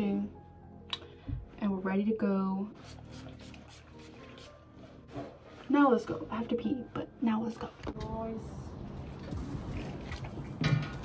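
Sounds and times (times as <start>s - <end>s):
faint background music: 0.0s - 11.0s
pump spray bottle spraying: 2.8s - 4.5s.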